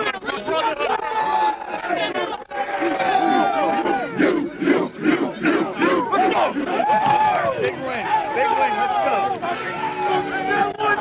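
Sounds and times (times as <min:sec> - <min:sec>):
team chanting in unison: 0:02.0 - 0:07.8.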